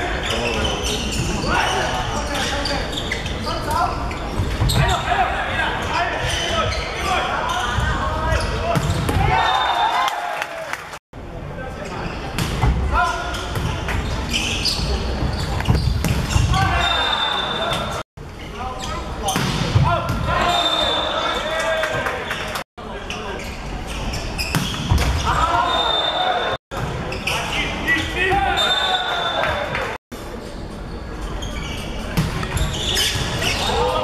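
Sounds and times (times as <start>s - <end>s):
players shouting: 4.8s - 10.9s, 25.2s - 26.6s.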